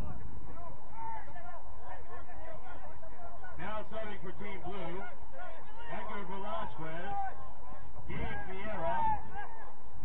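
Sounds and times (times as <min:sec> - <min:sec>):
distant players shouting: 0:00.0 - 0:10.0.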